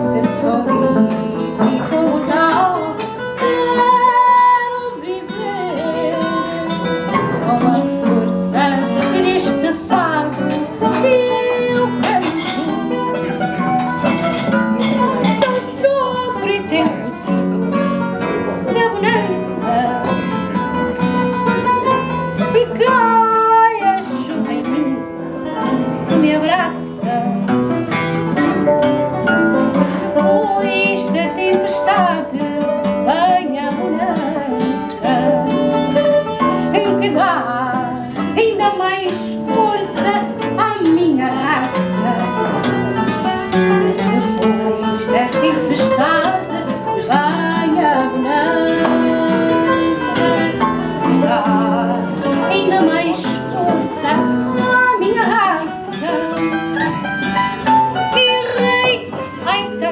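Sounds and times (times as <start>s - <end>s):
woman singing: 0.0s - 28.5s, 29.6s - 59.9s
plucked acoustic guitars: 0.0s - 59.9s.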